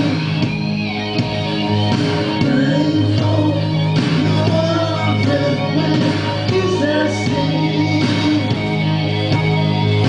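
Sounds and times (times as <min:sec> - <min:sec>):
rock music through speakers: 0:00.0 - 0:10.0.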